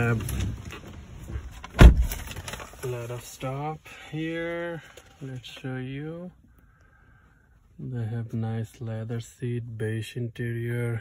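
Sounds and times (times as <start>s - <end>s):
car door shutting: 0.0s - 2.4s.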